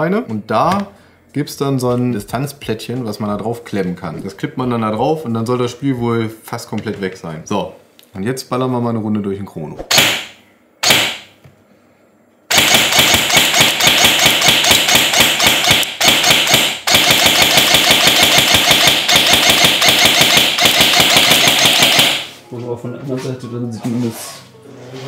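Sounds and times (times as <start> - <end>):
airsoft gun firing: 9.9 - 11.3, 12.5 - 22.4.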